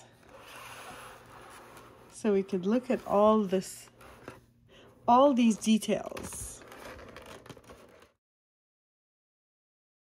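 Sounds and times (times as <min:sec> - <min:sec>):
hand rustling cardboard box: 0:05.1 - 0:08.2.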